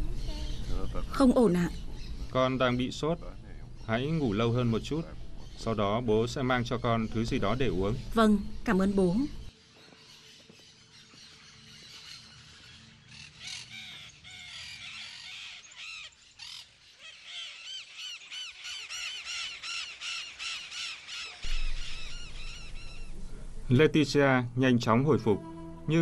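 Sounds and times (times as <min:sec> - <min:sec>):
parakeets chattering: 0:00.0 - 0:09.2, 0:11.2 - 0:23.7.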